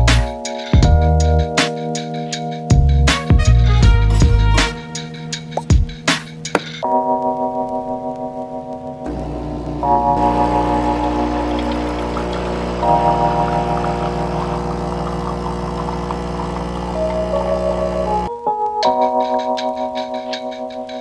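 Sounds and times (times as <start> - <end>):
background music with chords: 0.0 - 14.7, 16.8 - 21.0
espresso streaming into cups: 9.0 - 18.3
espresso machine pump humming: 9.1 - 18.3.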